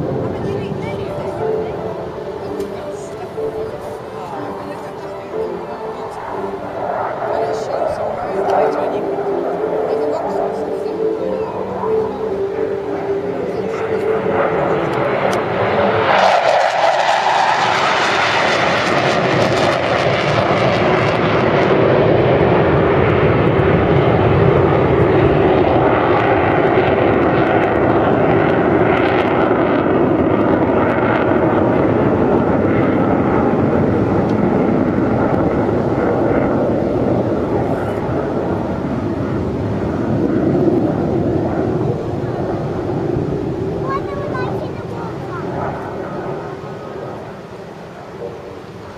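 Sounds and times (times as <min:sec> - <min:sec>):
jet roar: 0:00.0 - 0:48.9.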